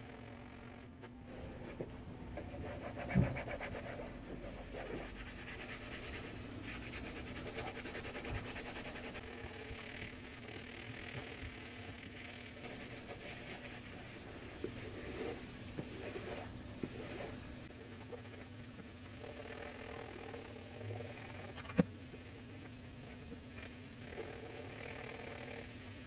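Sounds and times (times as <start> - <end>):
sponge scrubbing shoe: 1.6 - 18.4.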